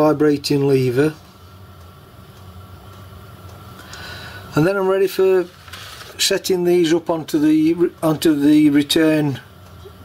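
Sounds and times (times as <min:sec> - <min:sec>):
workshop room hum: 0:00.0 - 0:10.0.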